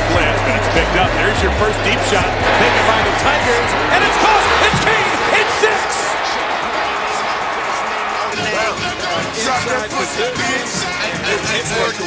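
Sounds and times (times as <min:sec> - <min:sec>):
background music: 0:00.0 - 0:12.0
stadium crowd noise: 0:00.0 - 0:12.0.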